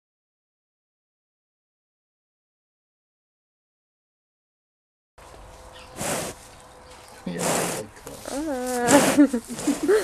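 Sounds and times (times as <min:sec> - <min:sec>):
calf snuffling: 0:05.3 - 0:10.0.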